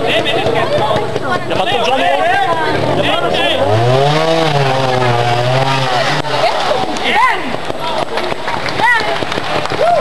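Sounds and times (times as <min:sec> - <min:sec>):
onlookers talking: 0:00.0 - 0:10.0
motorcycle engine revving: 0:02.7 - 0:07.1.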